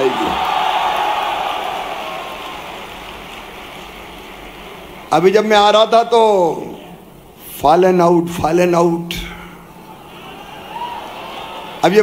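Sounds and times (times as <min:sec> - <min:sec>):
large audience clapping: 0:00.0 - 0:05.1.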